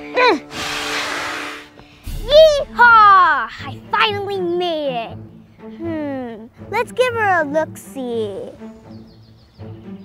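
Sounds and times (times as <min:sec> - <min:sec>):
soft background music: 0:00.0 - 0:10.0
rushing whoosh: 0:00.5 - 0:03.5.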